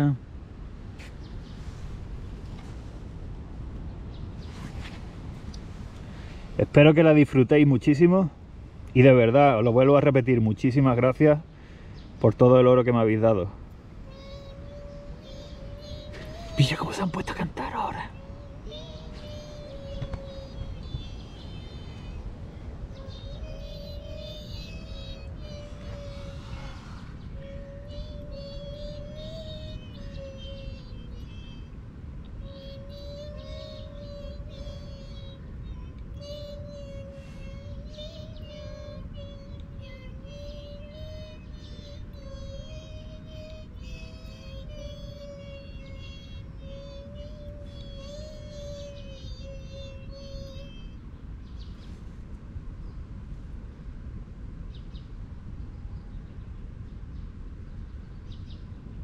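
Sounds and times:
low rumble of wind: 0.0s - 59.0s
wavering singing-like hum: 13.9s - 52.0s.

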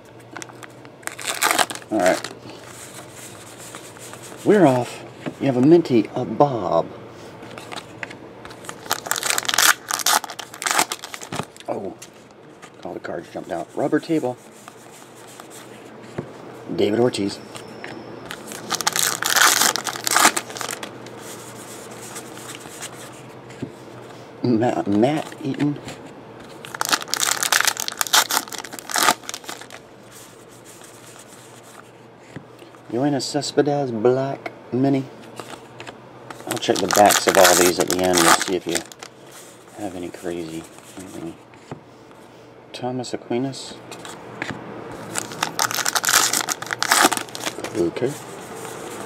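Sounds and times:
wrapper tearing and crinkling: 0.4s - 2.4s, 8.6s - 11.7s, 18.3s - 20.9s, 26.6s - 29.8s, 36.4s - 39.1s, 45.0s - 47.8s.

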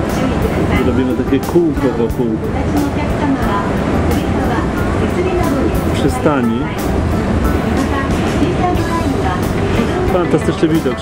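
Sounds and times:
background music: 0.0s - 11.0s
moving train rumble: 0.0s - 11.0s.

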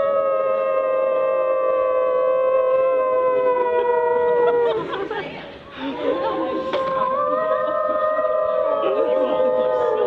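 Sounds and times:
people howling together: 0.0s - 5.2s, 5.8s - 10.0s.

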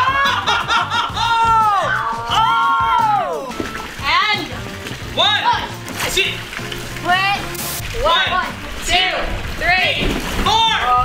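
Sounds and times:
people shouting: 0.0s - 4.4s, 10.4s - 11.0s
background music: 0.0s - 11.0s
water sloshing: 2.2s - 11.0s.

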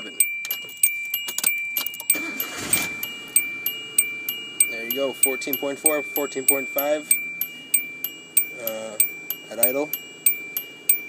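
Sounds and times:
car warning chime dinging: 0.0s - 11.0s
car engine cranking and starting: 0.7s - 5.3s.

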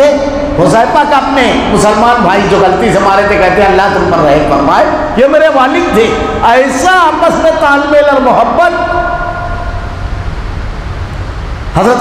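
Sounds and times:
low rumble and hiss: 0.0s - 12.0s
steady tone: 8.5s - 11.9s.

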